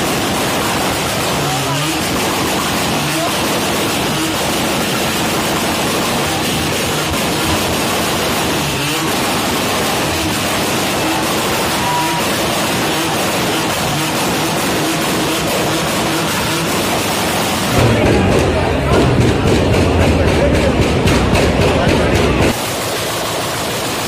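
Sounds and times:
car engine revving in burnout: 0:00.0 - 0:24.0.

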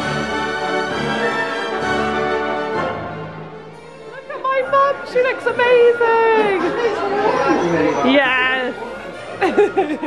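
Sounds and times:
party chatter: 0:03.8 - 0:10.0.

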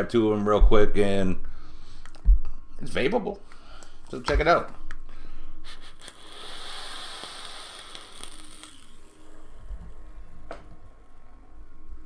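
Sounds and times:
person exhaling vapor: 0:05.6 - 0:09.0
vapor drawn through atomizer: 0:05.8 - 0:10.4.

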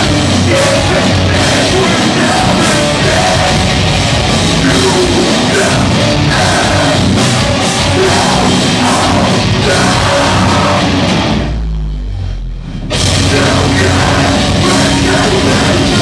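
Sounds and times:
vocalist singing or screaming: 0:00.0 - 0:11.3, 0:13.0 - 0:16.0
drums: 0:00.0 - 0:16.0
electric guitars: 0:00.0 - 0:16.0
heavy metal band playing: 0:00.0 - 0:16.0.

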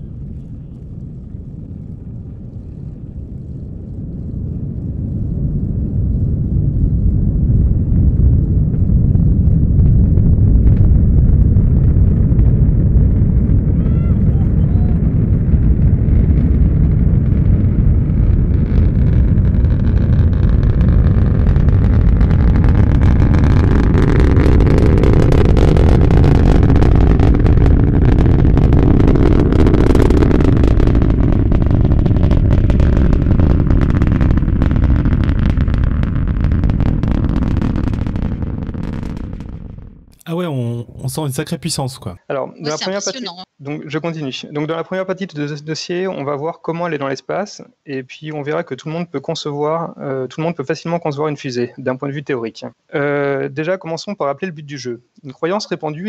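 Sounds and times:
rocket crackle: 0:00.0 - 0:42.2
rocket launch rumble: 0:00.0 - 0:42.2.

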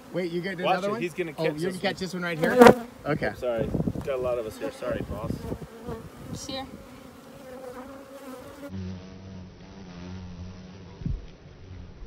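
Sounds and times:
honeybees buzzing: 0:00.0 - 0:10.9.

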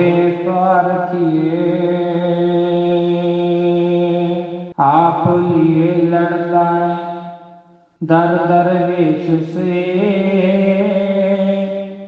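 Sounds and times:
man singing long held notes: 0:00.0 - 0:12.0.

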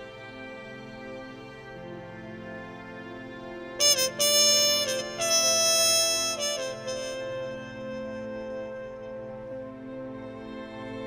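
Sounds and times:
trumpet playing slow melody: 0:03.8 - 0:10.6.

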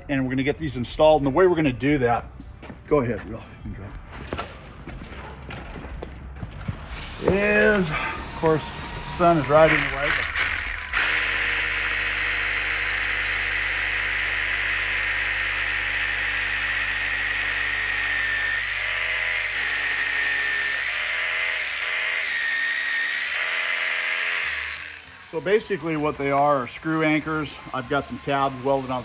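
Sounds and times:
rotary hammer drilling into concrete: 0:09.1 - 0:29.0.

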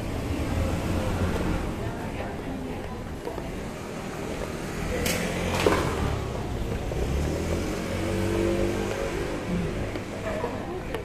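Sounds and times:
vehicle engine revving up: 0:00.0 - 0:01.9, 0:03.5 - 0:10.6.

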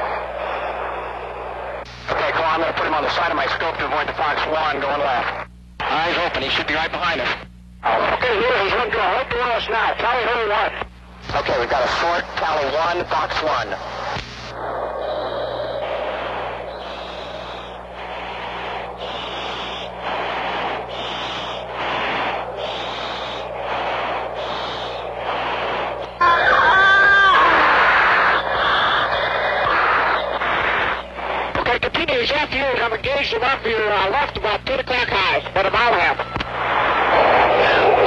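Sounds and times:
steady low hum: 0:00.0 - 0:38.0
breathing through mask microphone: 0:14.6 - 0:26.2, 0:27.8 - 0:31.6.

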